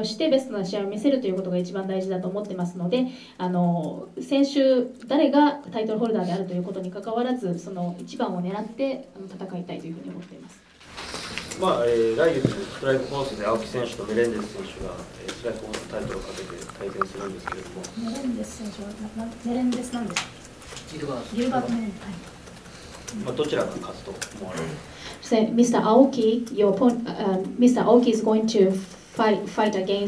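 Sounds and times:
person talking quietly: 12.4s - 18.4s
person speaking softly: 12.5s - 19.0s.

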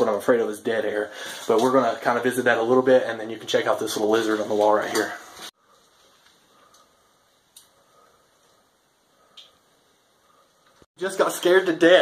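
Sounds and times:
faint clicks: 7.5s - 8.6s, 9.3s - 9.6s
man's voice: 11.0s - 12.0s.

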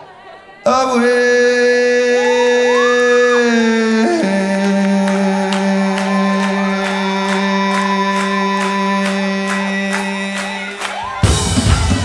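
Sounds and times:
man singing: 0.6s - 10.8s
live band chords: 6.0s - 12.0s.

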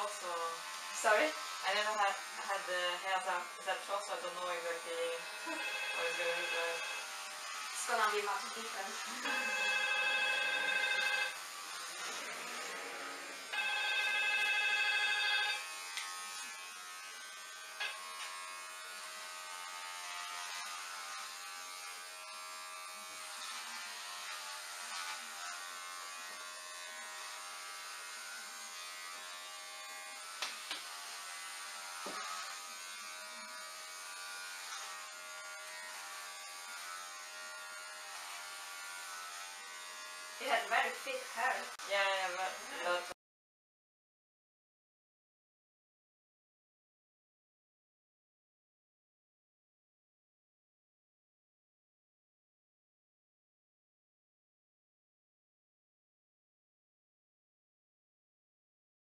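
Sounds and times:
electric hair clippers buzzing: 0.0s - 43.2s.

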